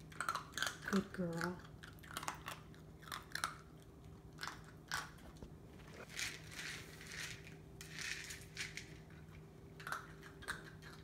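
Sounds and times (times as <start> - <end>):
puppy chewing dry kibble: 0.0 - 11.0.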